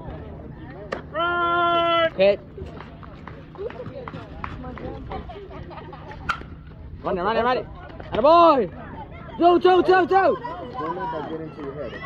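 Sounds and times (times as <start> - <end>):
faint crowd chatter: 0.0 - 12.0.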